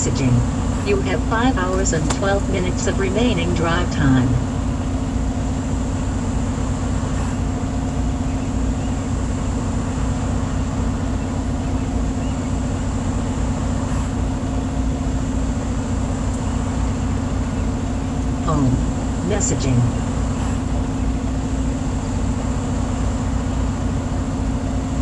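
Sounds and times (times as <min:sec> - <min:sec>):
diesel truck engine idling: 0:00.0 - 0:25.0.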